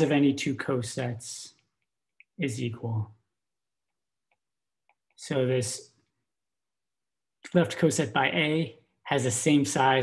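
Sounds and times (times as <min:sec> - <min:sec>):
person speaking: 0:00.0 - 0:03.4.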